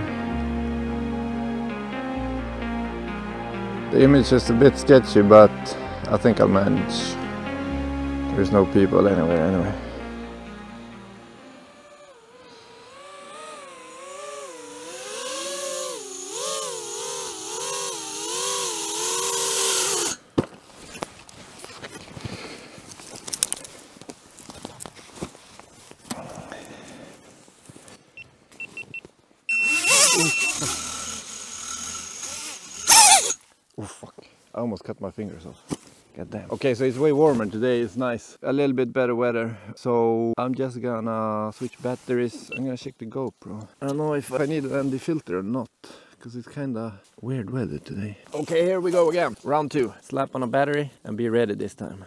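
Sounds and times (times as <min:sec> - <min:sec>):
motor running: 0:10.0 - 0:20.2, 0:29.5 - 0:33.4
high electronic beeps: 0:28.6 - 0:30.6.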